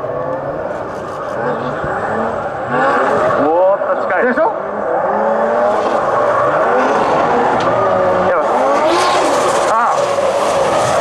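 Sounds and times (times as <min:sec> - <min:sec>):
car engines revving: 0:00.0 - 0:11.0
tyres squealing and skidding: 0:00.8 - 0:11.0.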